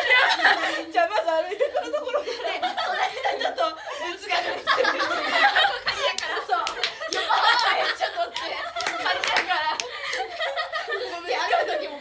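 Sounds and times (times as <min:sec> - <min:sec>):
excited voices: 0:00.0 - 0:12.0
women laughing: 0:00.0 - 0:12.0
hands clapping: 0:05.9 - 0:10.4.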